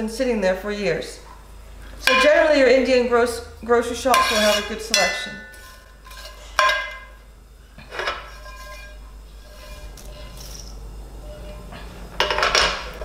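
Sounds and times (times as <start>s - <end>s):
spoon scraping in pan: 4.1s - 7.2s, 7.8s - 12.0s.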